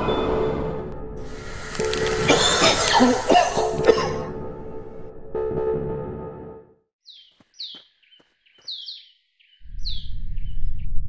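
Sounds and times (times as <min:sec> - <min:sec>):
birds chirping: 0:07.0 - 0:11.0.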